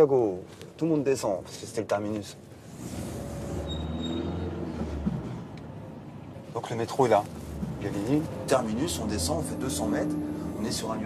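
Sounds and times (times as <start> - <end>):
car interior rumble: 6.5 - 11.0.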